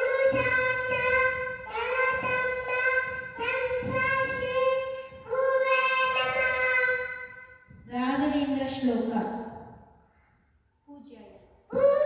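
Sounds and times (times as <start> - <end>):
boy chanting sing-song: 0.0 - 7.3, 11.7 - 12.0.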